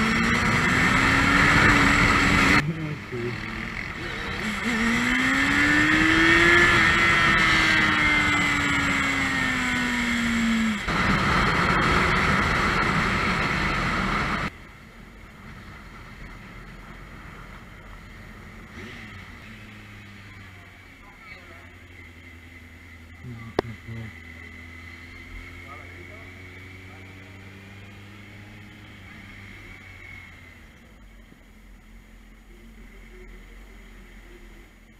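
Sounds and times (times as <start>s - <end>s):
motorcycle engine: 0.0s - 33.2s.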